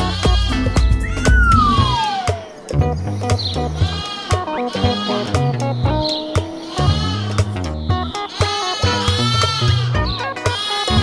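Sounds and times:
lamb bleating: 0:00.0 - 0:02.4, 0:03.7 - 0:05.6, 0:06.6 - 0:11.0
upbeat cartoon music: 0:00.0 - 0:11.0
falling gliding tone: 0:01.0 - 0:02.8.

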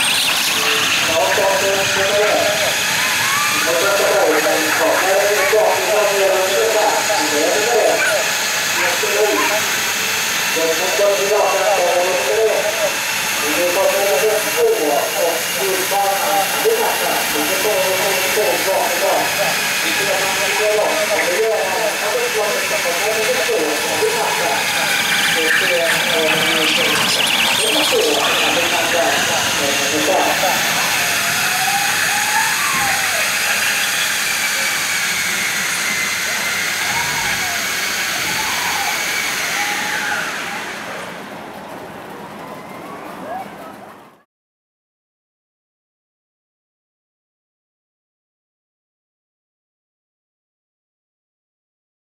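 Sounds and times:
people talking: 0:00.0 - 0:09.8, 0:10.5 - 0:41.1
high wavering whine: 0:00.0 - 0:41.2.

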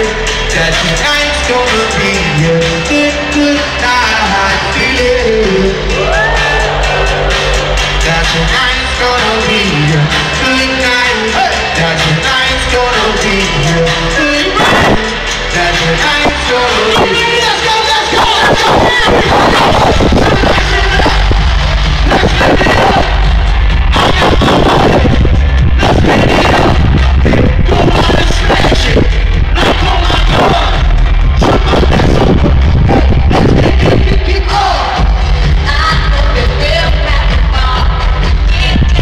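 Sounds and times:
crowd voices: 0:00.0 - 0:39.0
loud dance-pop music: 0:00.0 - 0:39.0.

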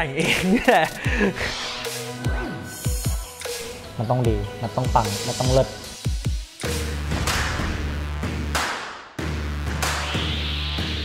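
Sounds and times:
swishing sweeps: 0:01.3 - 0:02.9.

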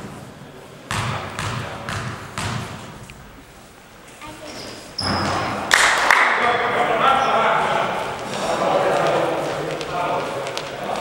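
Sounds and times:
basketball dribbling on floor: 0:00.9 - 0:02.9
players calling out: 0:05.0 - 0:11.0.

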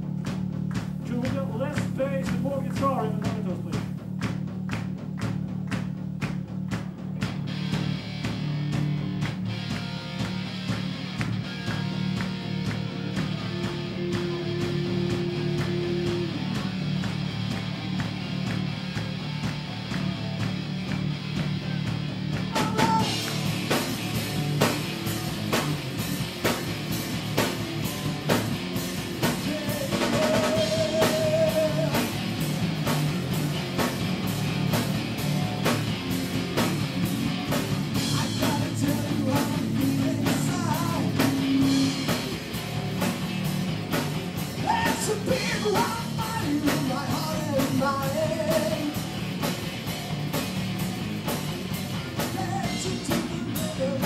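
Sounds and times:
drums and cymbals: 0:00.0 - 0:54.0
electric guitars: 0:00.0 - 0:54.0
metal band playing live: 0:00.0 - 0:54.0.

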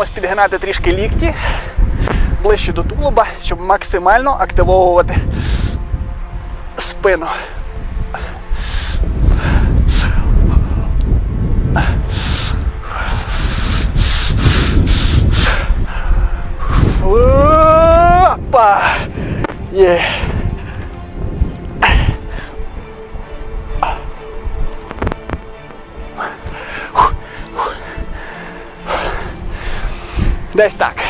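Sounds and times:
wind on microphone: 0:00.0 - 0:03.4, 0:04.1 - 0:30.6
man breathing hard: 0:05.3 - 0:06.0, 0:07.5 - 0:11.0, 0:11.6 - 0:17.0, 0:26.1 - 0:30.5.

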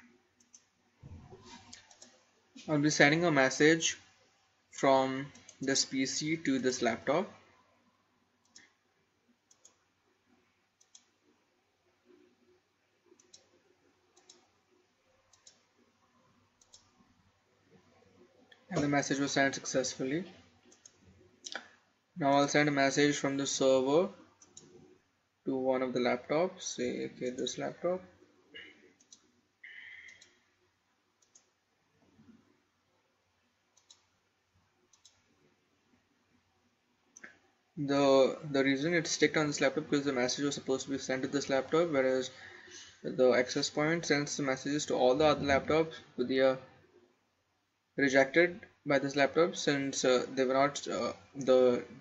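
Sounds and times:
computer mouse clicks: 0:00.4 - 0:02.2, 0:05.2 - 0:05.9, 0:08.4 - 0:08.8, 0:09.4 - 0:09.9, 0:10.8 - 0:11.2, 0:13.1 - 0:14.6, 0:15.2 - 0:15.7, 0:16.6 - 0:17.1, 0:20.4 - 0:21.7, 0:24.4 - 0:25.0, 0:28.6 - 0:30.5, 0:31.2 - 0:32.4, 0:33.7 - 0:34.1, 0:34.8 - 0:35.3
faint computer mouse clicks: 0:01.6 - 0:02.2, 0:09.5 - 0:09.8, 0:10.8 - 0:11.1, 0:13.2 - 0:13.6, 0:14.2 - 0:14.5, 0:15.3 - 0:15.7, 0:16.6 - 0:17.0, 0:31.2 - 0:31.5, 0:33.8 - 0:34.1, 0:34.9 - 0:35.3.

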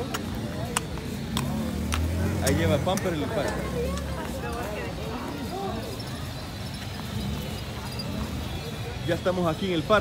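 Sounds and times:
horse hooves clopping on cobblestones: 0:00.0 - 0:10.0.

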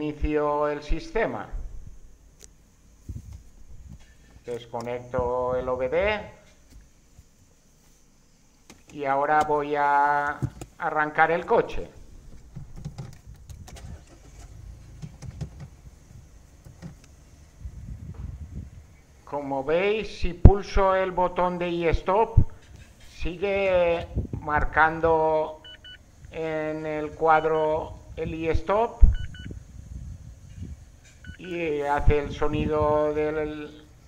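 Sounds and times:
car engine starting and running: 0:12.1 - 0:17.5
low thump: 0:18.0 - 0:18.5
short high beeps: 0:25.6 - 0:26.0, 0:29.1 - 0:29.6, 0:31.2 - 0:31.4.

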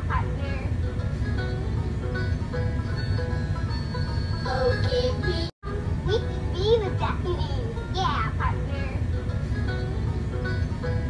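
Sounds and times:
instrumental children's song: 0:00.0 - 0:11.0.

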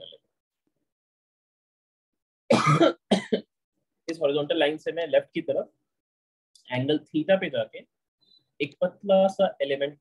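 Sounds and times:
man coughing: 0:02.5 - 0:03.5.

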